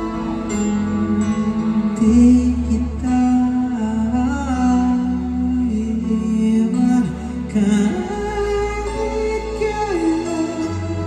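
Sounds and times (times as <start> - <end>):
guitar and bass backing: 0.0 - 11.0
man singing a long note: 0.0 - 11.0.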